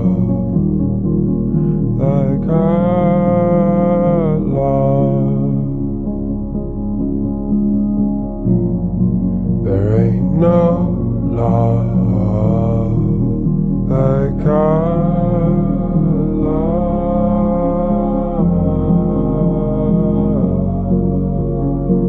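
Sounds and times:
slowed-down song: 0:00.0 - 0:22.0.

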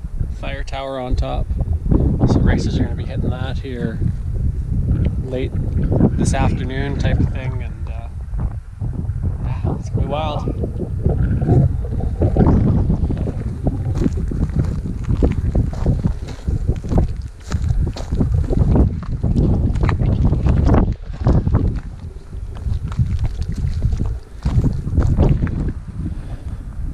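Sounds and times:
wind buffeting microphone: 0:00.0 - 0:26.9
footsteps on rock: 0:12.6 - 0:25.8.

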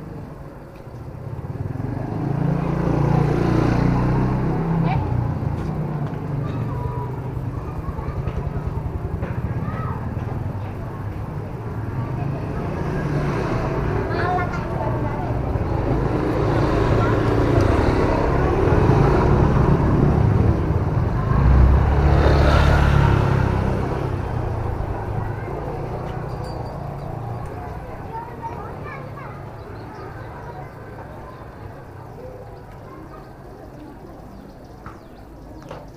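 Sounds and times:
motor scooters riding past: 0:00.0 - 0:35.9.

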